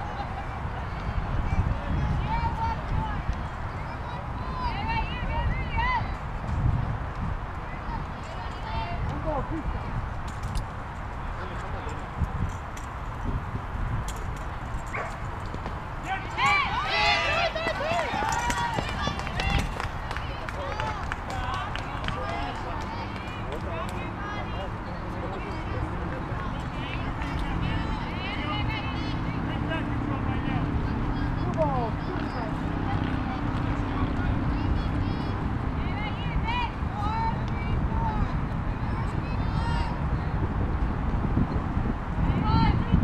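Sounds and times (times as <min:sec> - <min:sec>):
people calling out: 0:16.0 - 0:29.4.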